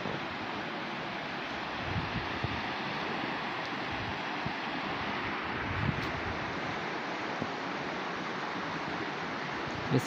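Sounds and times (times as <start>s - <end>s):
river rushing over rocks: 0.0s - 10.0s.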